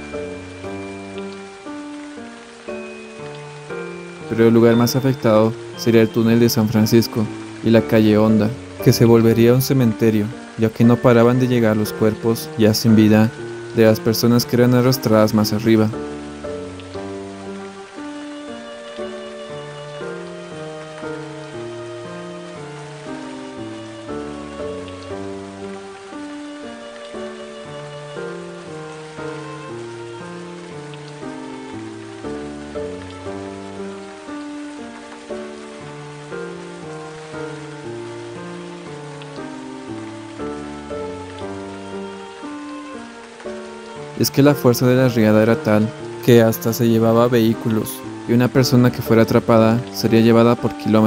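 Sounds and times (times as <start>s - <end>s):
heavy rain hiss: 0.0s - 51.0s
slow background music: 0.0s - 51.0s.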